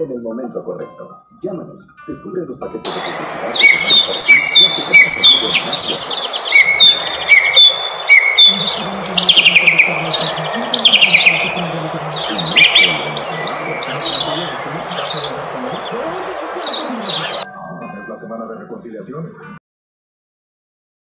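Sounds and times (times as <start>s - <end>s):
birds chirping and calling: 2.9s - 18.4s.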